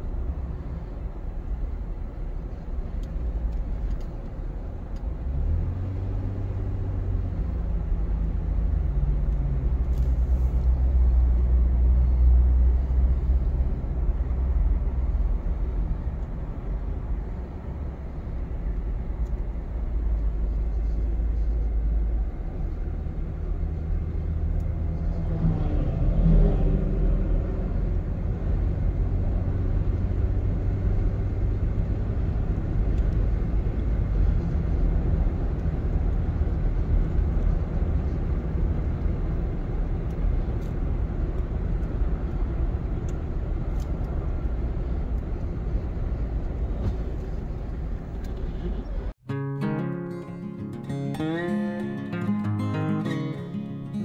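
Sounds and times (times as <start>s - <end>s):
car engine and tyre rumble: 0.0s - 49.2s.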